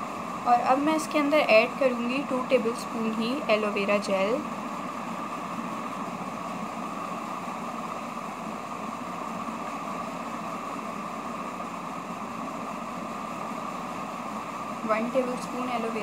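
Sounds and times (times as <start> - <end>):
mechanical hum with hiss: 0.0 - 16.0.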